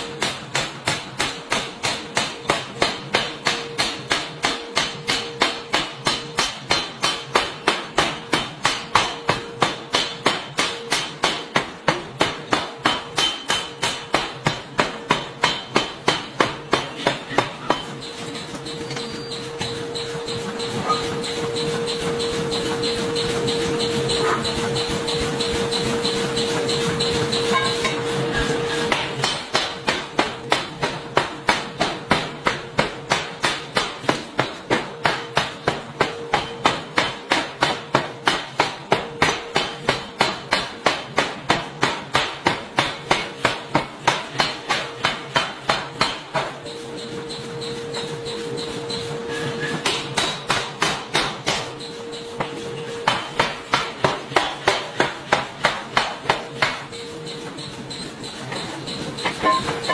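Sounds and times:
forging hammer pounding steel: 0.0s - 59.9s.

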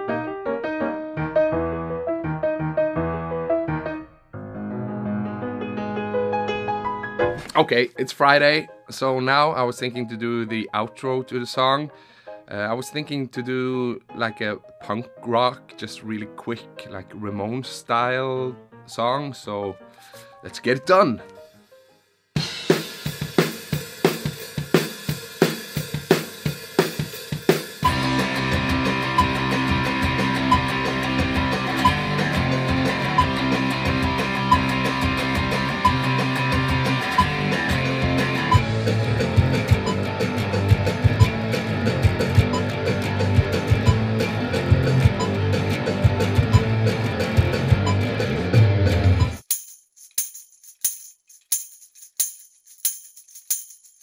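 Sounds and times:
bass guitar: 1.1s - 7.6s, 27.8s - 49.4s
tambourine struck and shaken: 22.4s - 30.8s, 49.3s - 54.0s
punk rock drum beat: 22.4s - 49.4s
distorted electric guitar: 27.8s - 49.4s.

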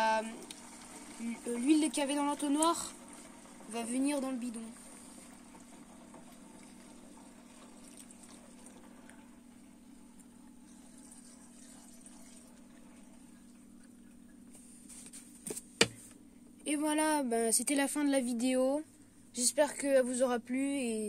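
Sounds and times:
oil trickling through funnel: 0.0s - 14.5s.

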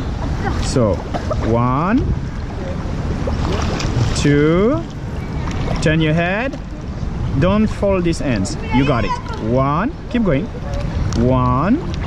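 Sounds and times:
water splashing from swim strokes: 0.0s - 12.0s.

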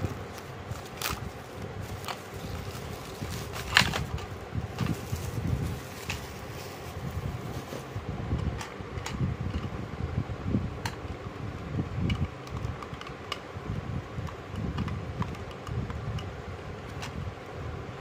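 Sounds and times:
low background whir: 0.0s - 18.0s.

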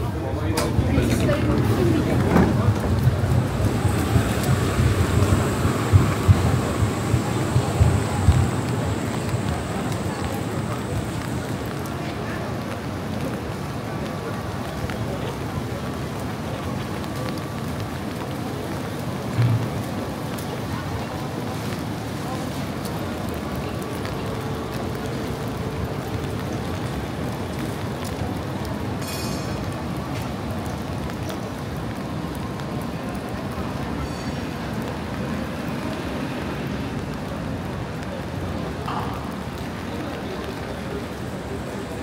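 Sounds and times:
people talking: 0.0s - 42.0s
rain on a wet street: 0.0s - 42.0s.

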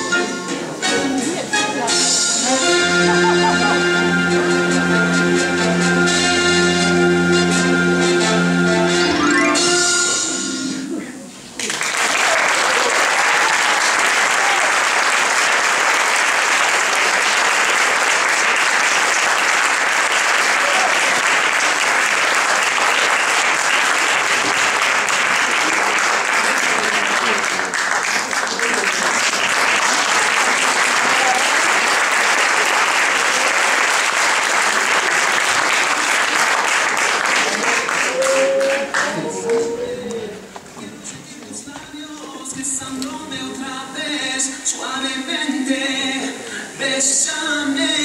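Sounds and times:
audience applauding: 11.6s - 40.1s.

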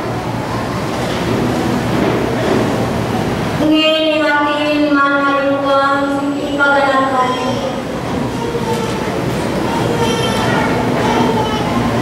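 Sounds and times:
woman speaking into microphone: 3.6s - 7.8s.

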